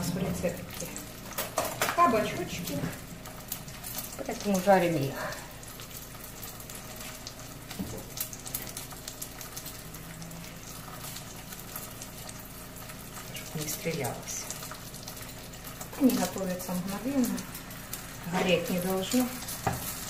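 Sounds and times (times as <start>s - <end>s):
food frying in hot oil: 0.0s - 20.0s.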